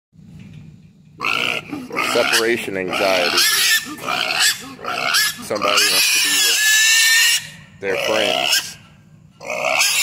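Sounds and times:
pig squealing loudly: 1.2s - 8.8s, 9.4s - 10.0s.

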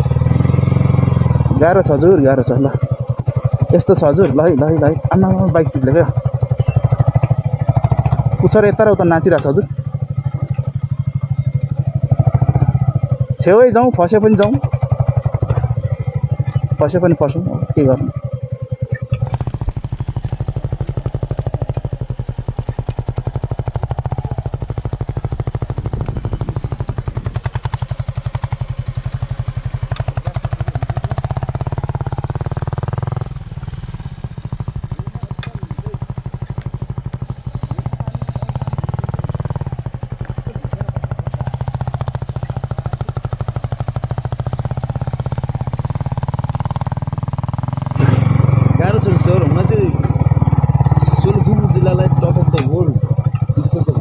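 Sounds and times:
motorcycle engine running: 0.0s - 54.0s.

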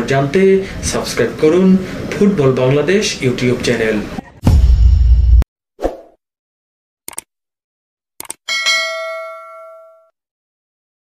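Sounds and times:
quick clicks: 7.1s - 7.3s, 8.2s - 8.4s
notification bell ding: 8.5s - 10.1s.

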